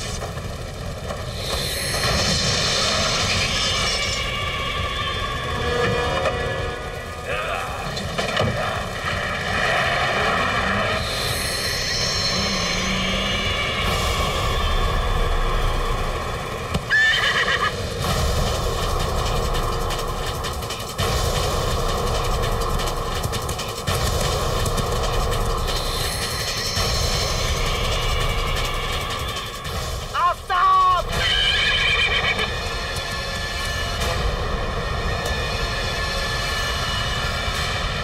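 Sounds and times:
horse hooves galloping: 16.7s - 30.2s
horse whinny: 16.9s - 17.8s, 31.2s - 32.5s.

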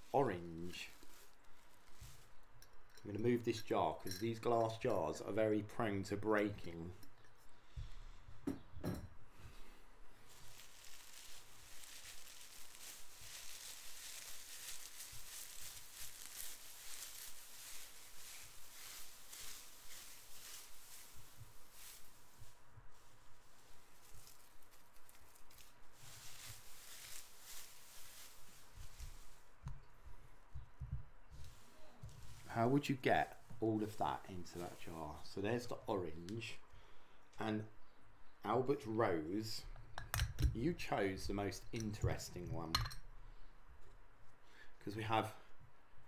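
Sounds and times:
shredded paper rustling: 0.0s - 2.3s, 10.2s - 29.6s.

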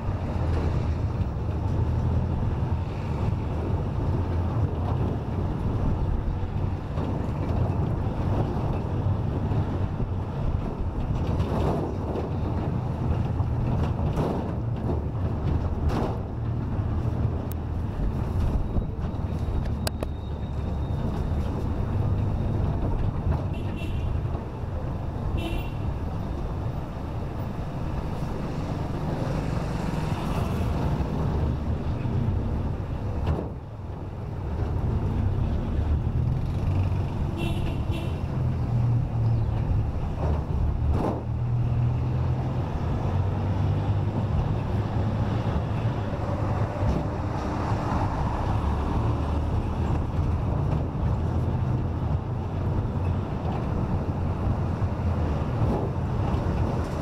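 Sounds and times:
vehicle engine and tyre rumble: 0.0s - 57.0s.

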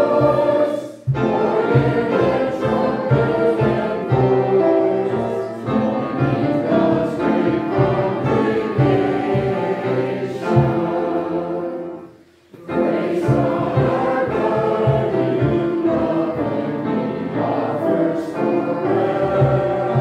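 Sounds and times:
choir and congregation singing hymn: 0.0s - 20.0s.

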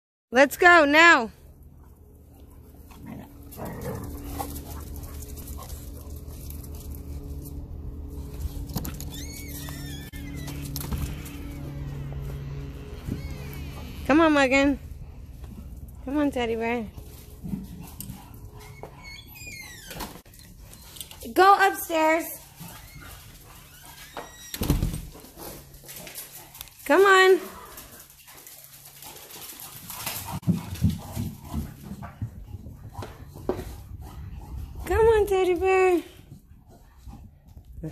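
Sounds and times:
puppies play-wrestling: 1.7s - 13.9s, 27.6s - 34.9s
dogs whining and snuffling: 1.7s - 14.0s, 17.0s - 21.3s, 22.4s - 26.8s.

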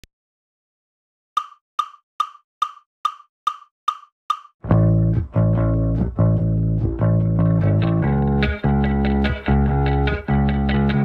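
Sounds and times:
metronome clicks: 1.4s - 4.5s.

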